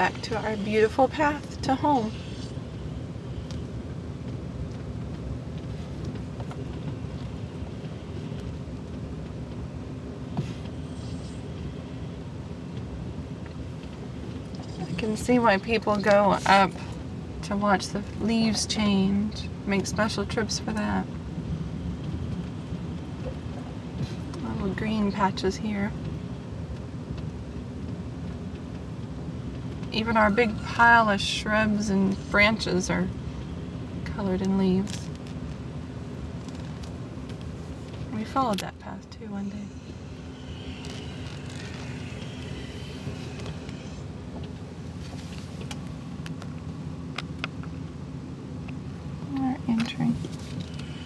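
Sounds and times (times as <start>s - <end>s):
car engine and tyres rumbling: 0.0s - 51.0s.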